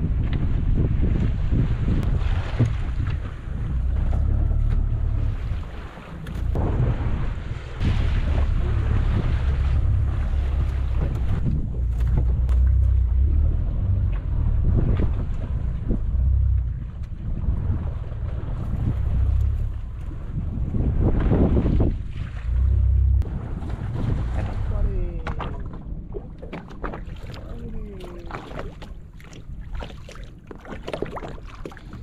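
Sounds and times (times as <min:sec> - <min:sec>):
sea wash: 0:00.0 - 0:32.0
wind buffeting microphone: 0:00.0 - 0:32.0.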